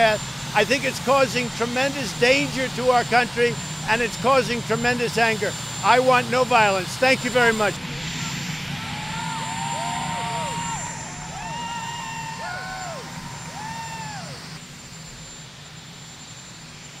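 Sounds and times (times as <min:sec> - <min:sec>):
helicopter engine hum with whine: 0:00.0 - 0:17.0.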